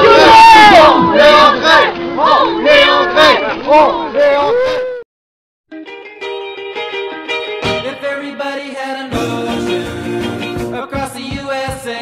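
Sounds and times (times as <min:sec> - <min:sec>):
group chanting while marching: 0:00.0 - 0:04.4.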